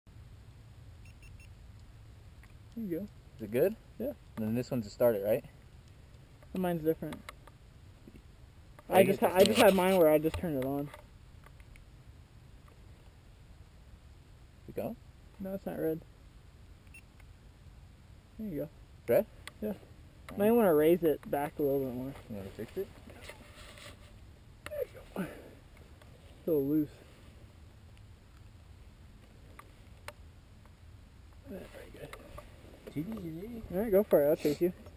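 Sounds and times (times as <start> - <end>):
faint low rumble: 0.1 - 34.9.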